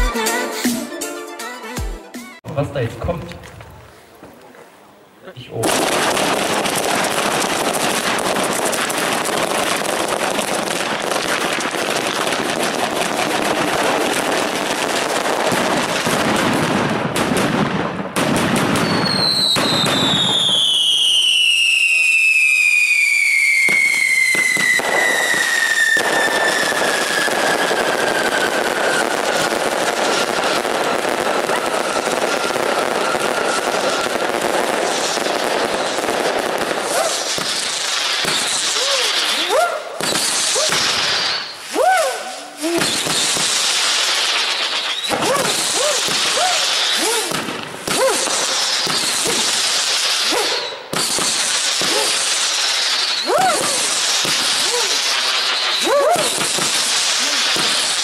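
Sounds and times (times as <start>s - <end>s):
fireworks crackling and banging: 1.9s - 58.0s
long falling whistle: 18.9s - 29.2s, 31.2s - 34.1s
short rising and falling whistles: 41.2s - 41.8s.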